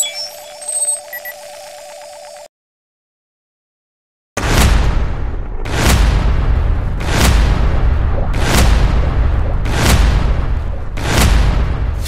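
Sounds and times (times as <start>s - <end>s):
short high beeps: 0.0s - 1.7s
electronic tone with pulsing warble: 0.0s - 2.5s.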